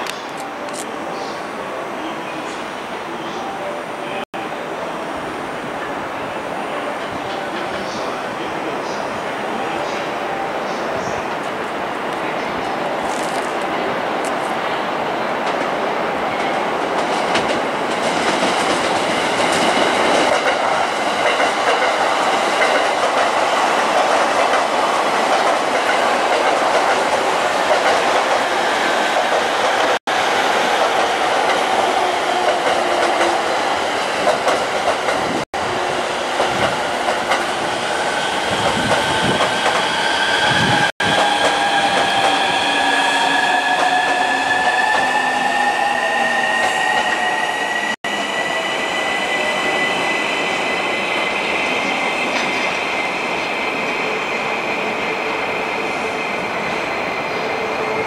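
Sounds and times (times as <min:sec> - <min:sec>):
train wheels rumbling and clattering: 0:16.4 - 0:45.2.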